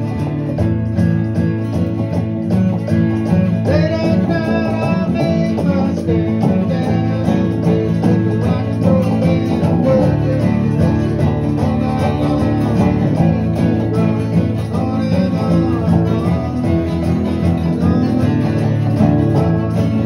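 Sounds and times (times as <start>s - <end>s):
acoustic guitars playing country tune: 0.0s - 20.0s.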